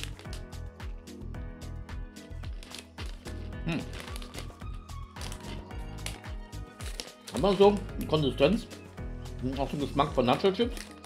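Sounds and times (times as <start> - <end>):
foil snack bag crinkling: 0.0 - 0.5, 2.2 - 8.2, 9.6 - 11.0
music with a steady beat: 0.0 - 11.0.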